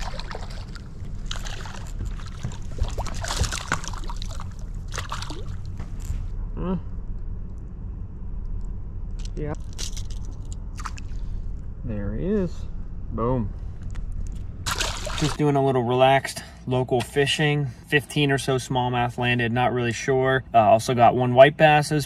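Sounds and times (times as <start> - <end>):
fish splashing and thrashing: 0.0 - 6.0, 9.6 - 11.4, 14.6 - 15.4
steady low hum: 0.0 - 22.0.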